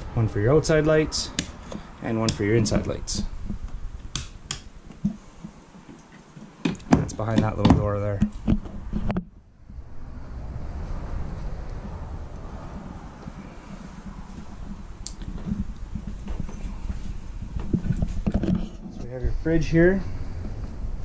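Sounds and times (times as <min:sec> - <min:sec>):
low rumble: 0:08.8 - 0:18.2, 0:19.0 - 0:21.0.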